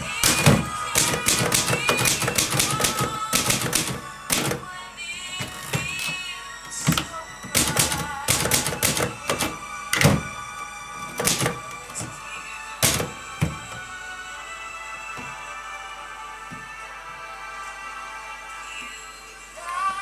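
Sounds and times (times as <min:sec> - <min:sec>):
typewriter carriage return: 0:00.0 - 0:04.7, 0:06.8 - 0:10.3, 0:11.0 - 0:12.2, 0:12.8 - 0:13.5
background music: 0:00.0 - 0:20.0
typewriter keystrokes: 0:00.2 - 0:04.6, 0:07.5 - 0:10.2, 0:11.1 - 0:11.6.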